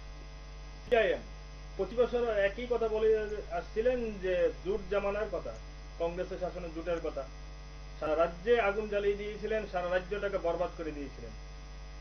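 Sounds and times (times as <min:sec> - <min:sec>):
electrical mains hum: 0:00.0 - 0:12.0
man speaking syllable: 0:00.9 - 0:07.3, 0:08.0 - 0:11.4.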